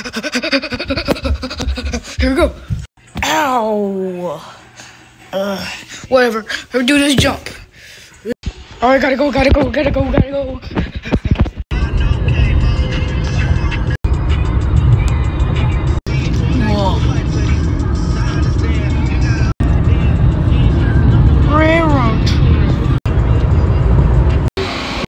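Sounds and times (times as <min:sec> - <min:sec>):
music playing: 0:11.2 - 0:25.0
car road noise rumble: 0:11.8 - 0:24.5.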